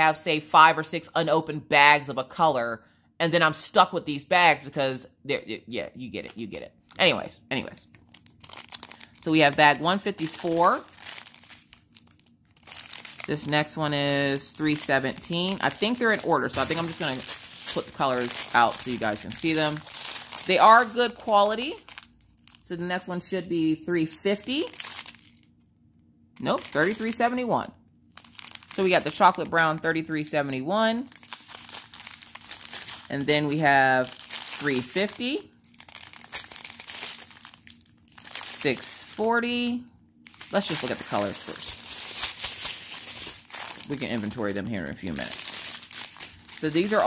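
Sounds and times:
plastic bags crinkling: 6.2 - 22.8, 24.4 - 25.5, 26.4 - 39.6, 40.2 - 47.0.

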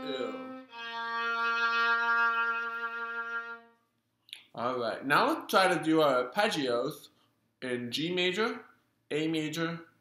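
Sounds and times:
violin bowing long low note: 0.0 - 3.8.

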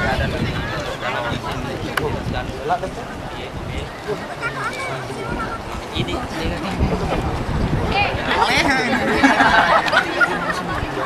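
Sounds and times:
people talking over one another: 0.0 - 11.0
raised lively voices: 0.0 - 11.0.

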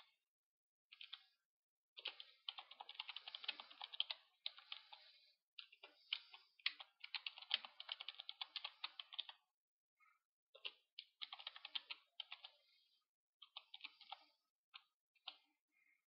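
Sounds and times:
faint keyboard typing: 0.9 - 1.4, 2.0 - 9.5, 10.5 - 12.7, 13.4 - 15.5.

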